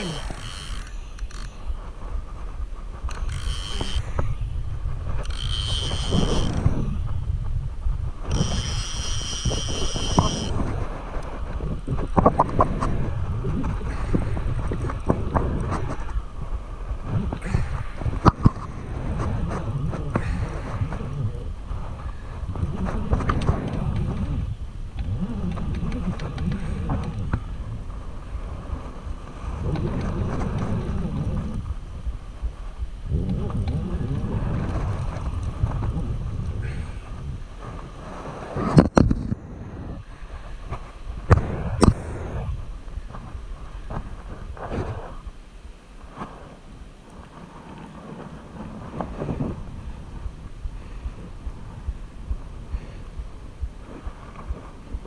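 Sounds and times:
fishing reel drag whining: 0.0s - 1.8s, 3.0s - 4.6s, 5.2s - 7.0s, 8.2s - 10.7s
wind on microphone: 0.0s - 55.0s
sharp clicks: 3.0s - 4.3s.

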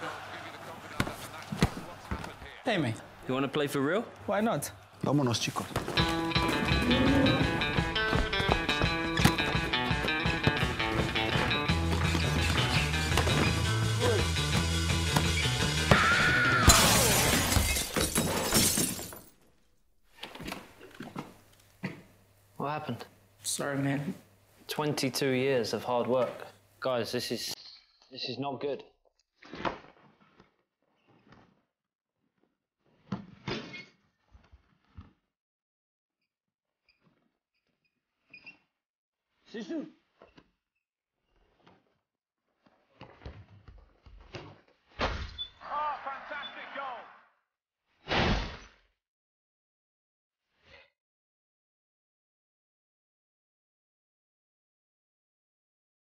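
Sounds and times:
footsteps on tiled floor: 5.6s - 12.5s
people shouting: 15.8s - 16.8s
glass shelves shattering: 16.7s - 19.4s
shoe squeaks: 36.8s - 38.8s.

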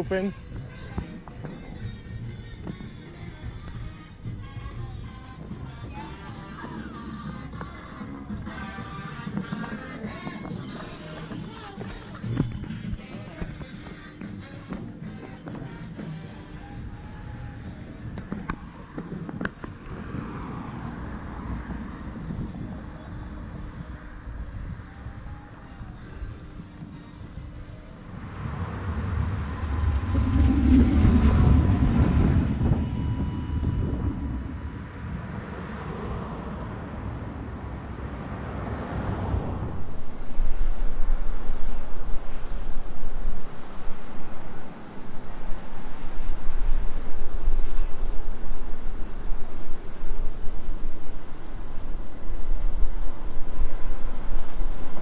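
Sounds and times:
faint background music: 0.0s - 19.4s, 21.6s - 28.4s
passing vehicle rumble: 0.0s - 55.0s.

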